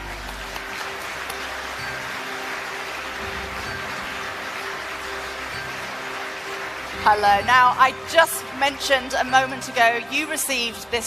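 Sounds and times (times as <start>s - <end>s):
audience applauding: 0.0s - 9.6s
stage walk-on music: 0.0s - 11.0s.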